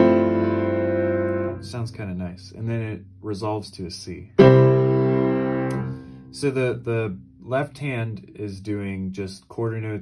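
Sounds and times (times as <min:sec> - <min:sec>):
piano chord ringing: 0:00.0 - 0:01.7, 0:04.4 - 0:06.3.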